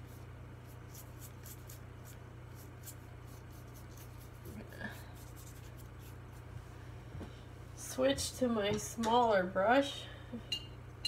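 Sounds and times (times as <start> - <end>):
brush swishing across wet paper: 0.0 - 6.6
steady low hum: 0.0 - 11.0.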